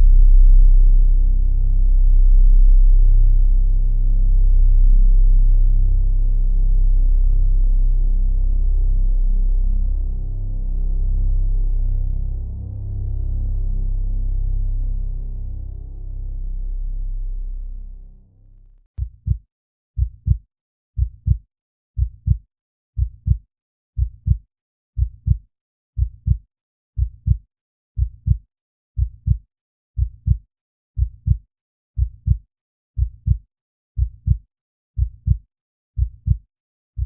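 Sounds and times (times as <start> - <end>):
low drone: 0.0 - 18.7
heartbeat thumps: 19.0 - 19.4, 20.0 - 20.4, 21.0 - 21.4, 22.0 - 22.4, 23.0 - 23.4, 24.0 - 24.4, 25.0 - 25.4, 26.0 - 26.4, 27.0 - 27.4, 28.0 - 28.4, 29.0 - 29.4, 30.0 - 30.4, 31.0 - 31.4, 32.0 - 32.4, 33.0 - 33.4, 34.0 - 34.4, 35.0 - 35.4, 36.0 - 36.4.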